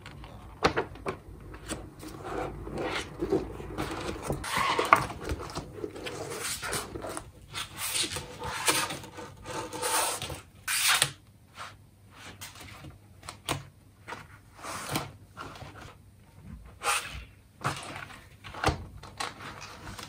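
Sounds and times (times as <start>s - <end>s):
books sliding across desk: 1.0s - 10.4s.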